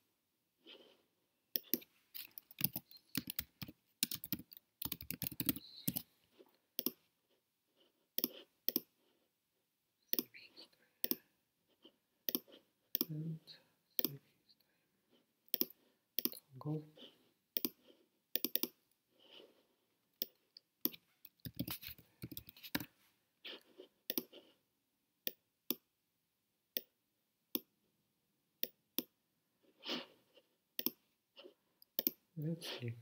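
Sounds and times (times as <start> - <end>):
computer keyboard typing: 1.6 - 6.1, 15.5 - 16.4, 18.4 - 18.8, 20.2 - 22.9
mouse clicks: 6.8 - 7.0, 17.6 - 17.8, 30.8 - 31.0.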